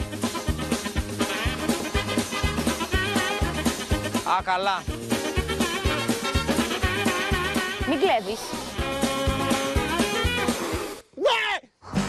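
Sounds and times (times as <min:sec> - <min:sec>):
guitar music with steady beat: 0:00.0 - 0:11.0.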